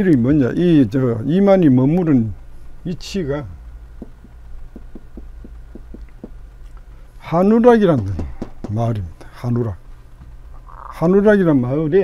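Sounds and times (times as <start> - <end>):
steady low hum: 0.0 - 12.0
marker pen tapping on whiteboard: 4.0 - 6.4, 7.9 - 8.9.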